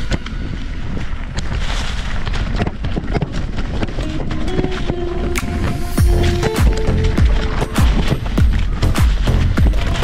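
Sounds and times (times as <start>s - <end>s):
wind buffeting microphone: 0.0s - 10.0s
tyres rolling over dry leaves: 0.9s - 10.0s
bike rattling clicks and knocks: 1.3s - 4.9s, 6.4s - 10.0s.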